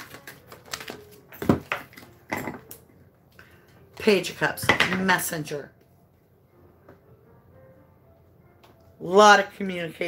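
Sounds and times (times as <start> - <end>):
cards being shuffled: 0.0 - 2.2.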